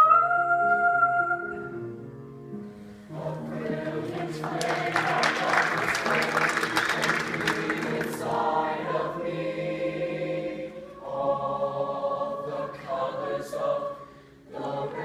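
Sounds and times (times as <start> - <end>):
choir singing in harmony: 3.0 - 15.0.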